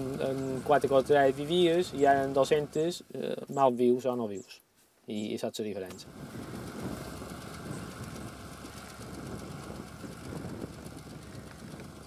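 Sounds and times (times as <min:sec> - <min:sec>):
tractor engine rumbling: 0:00.0 - 0:04.5, 0:05.8 - 0:12.0.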